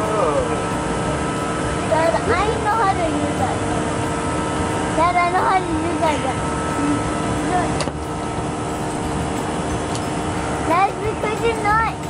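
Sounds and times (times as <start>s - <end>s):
steady mechanical hum: 0.0s - 12.0s.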